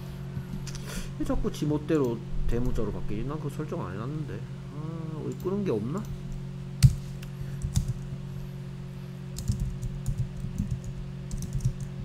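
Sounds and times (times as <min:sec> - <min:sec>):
low hum: 0:00.0 - 0:12.0
keyboard typing: 0:09.4 - 0:11.9.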